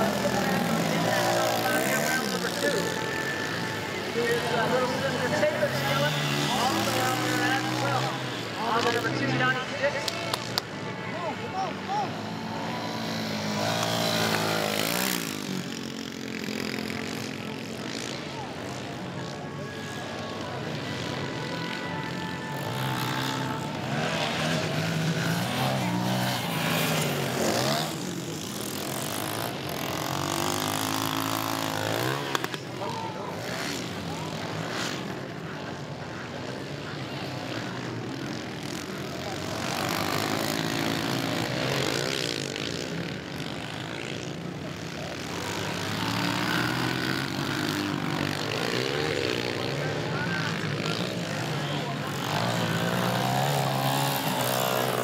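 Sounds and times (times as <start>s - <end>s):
dirt bike engines revving: 0.0s - 55.0s.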